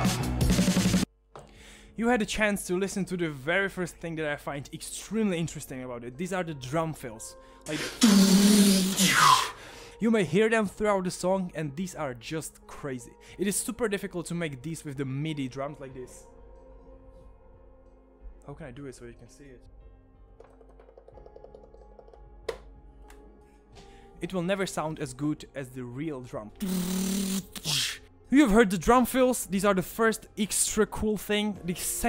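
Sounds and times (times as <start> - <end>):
man imitating drum fill with mouth: 7.8 - 9.6, 26.6 - 28.0
taps on keyboard keys and pads: 20.4 - 23.3.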